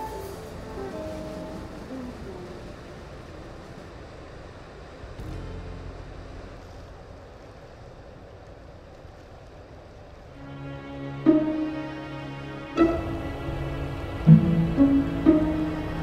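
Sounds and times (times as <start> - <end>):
bow wave water washing: 0.0 - 9.1, 9.7 - 16.0
diesel engine rumble: 0.0 - 11.2.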